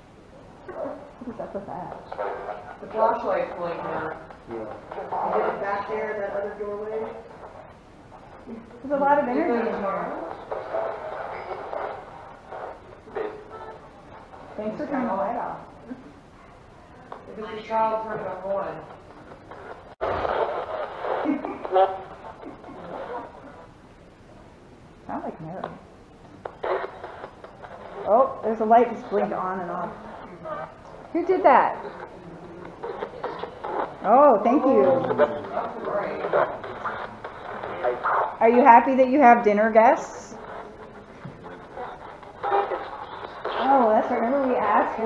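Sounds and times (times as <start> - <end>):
choppy radio voices and static: 0.7 - 23.8, 25.1 - 45.0.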